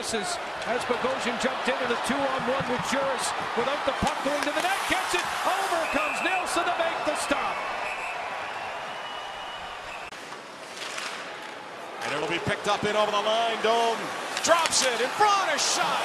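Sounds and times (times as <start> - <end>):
hockey sticks and puck clacking: 0.6 - 6.4, 10.2 - 12.4, 14.1 - 16.0.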